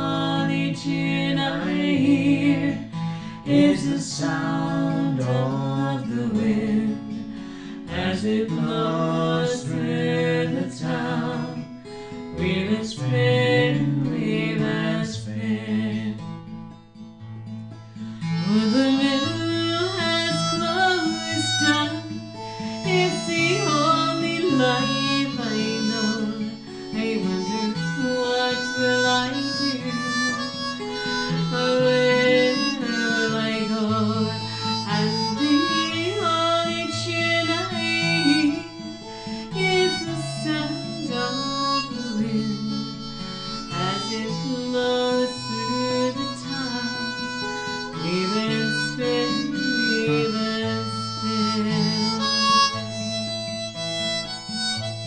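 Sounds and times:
acoustic guitar: 0.0s - 55.0s
harmonica melody: 0.0s - 55.0s.

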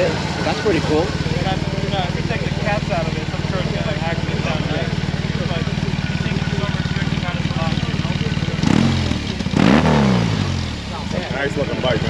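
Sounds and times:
motorcycle engine idling and revving: 0.0s - 12.0s.

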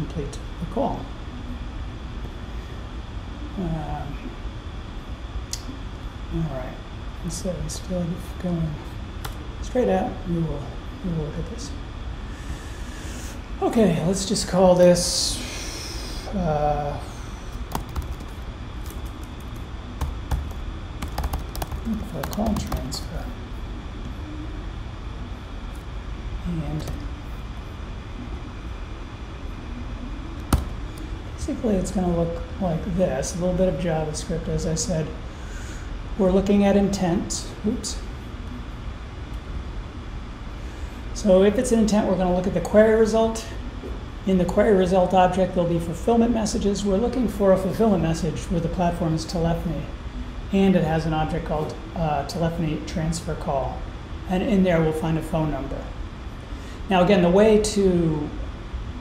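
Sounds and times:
low hum: 0.0s - 59.0s.

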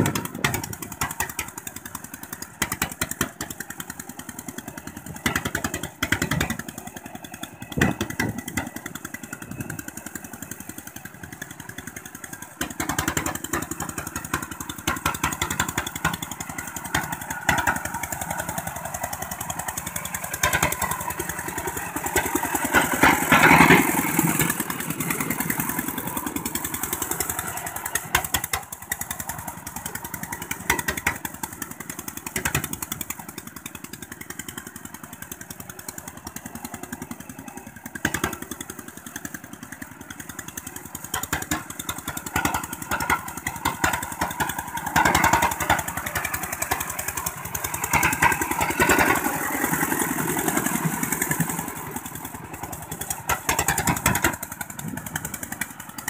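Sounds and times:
walking tractor diesel engine: 0.0s - 56.0s.

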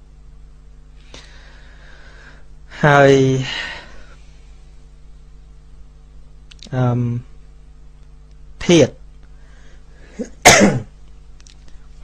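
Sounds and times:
man sneezing: 10.1s - 10.9s.

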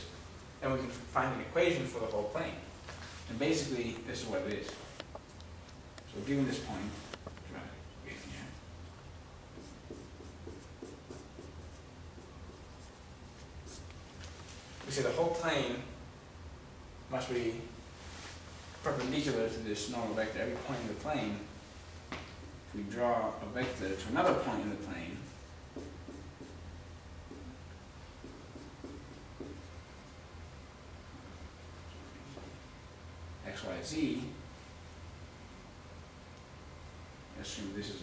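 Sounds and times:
low steady hum: 0.0s - 38.0s
marker scratching on whiteboard: 9.5s - 14.0s, 25.2s - 26.7s, 27.3s - 30.3s.

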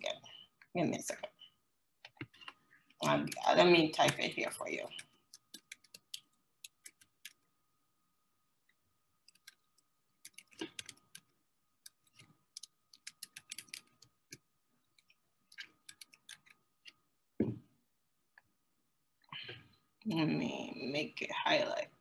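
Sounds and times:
computer keyboard typing: 2.1s - 7.4s, 9.3s - 14.4s, 15.0s - 17.0s.

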